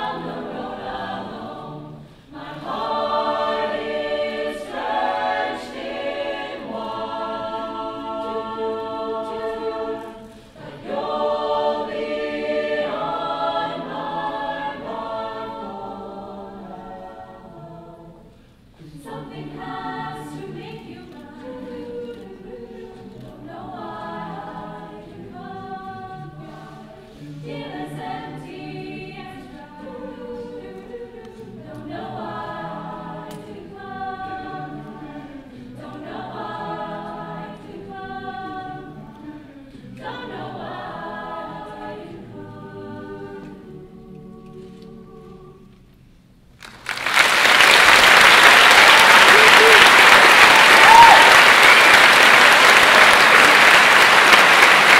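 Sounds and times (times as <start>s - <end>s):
choir singing a cappella: 0.0s - 46.1s, 48.2s - 54.9s
loud applause: 46.6s - 54.9s.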